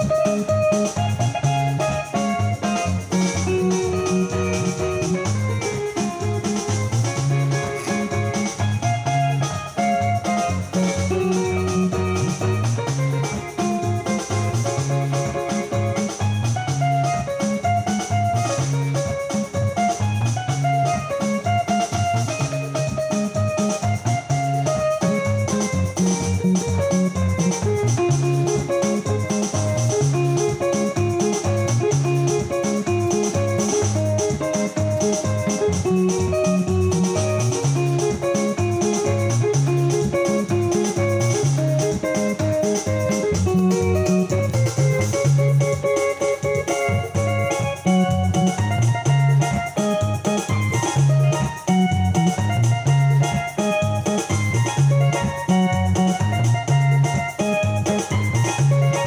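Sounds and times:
keyboard playing dance music: 0.0s - 59.0s.

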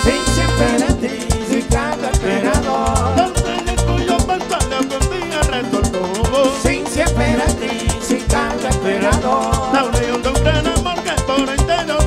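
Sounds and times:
merengue band playing: 0.0s - 12.0s.

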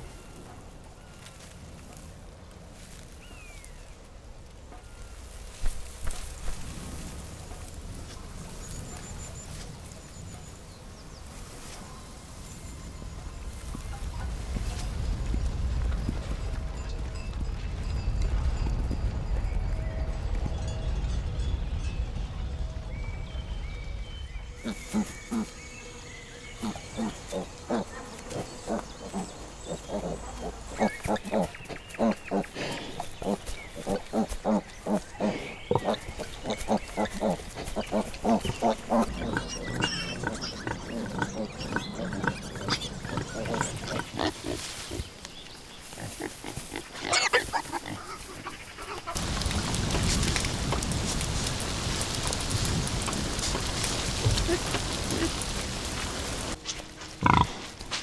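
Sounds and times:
rain hiss: 0.0s - 58.0s
pigs grunting: 24.6s - 25.6s, 26.6s - 45.1s, 45.9s - 49.8s, 53.4s - 56.0s, 57.2s - 57.8s
pig squealing: 36.7s - 44.6s, 46.8s - 49.2s.

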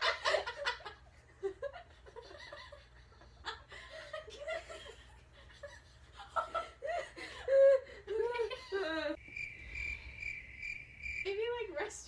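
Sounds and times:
girls laughing and giggling: 0.0s - 9.2s.

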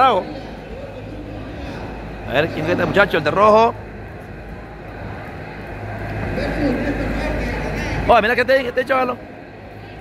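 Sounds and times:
gym hum and rumble: 0.0s - 10.0s.

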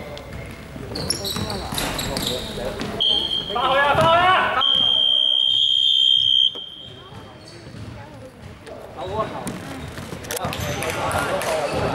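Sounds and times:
players' voices and calls: 0.0s - 11.9s
shrill high-pitched whistle blast: 4.6s - 7.0s.

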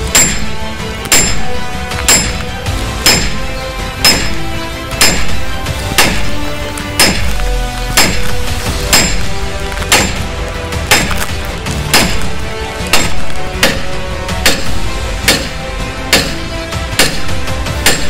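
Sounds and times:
hammer striking steel drift: 0.0s - 18.0s.

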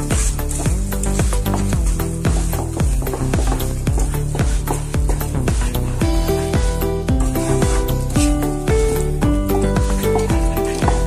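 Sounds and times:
music with steady beat: 0.0s - 11.0s
sliding bass notes: 0.0s - 11.0s.

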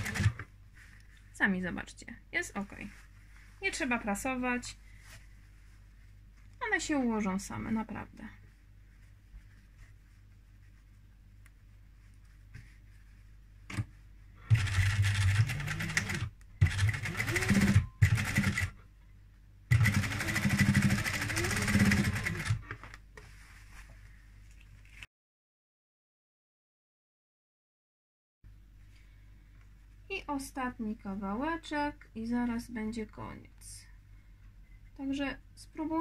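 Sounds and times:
sewing machine stitching: 0.0s - 0.5s, 14.5s - 18.7s, 19.7s - 22.6s
fabric handling: 8.4s - 14.2s.

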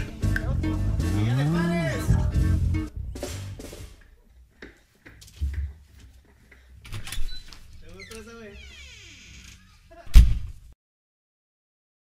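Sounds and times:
band playing a song: 0.0s - 3.8s
drum and bass hits: 0.0s - 4.0s.

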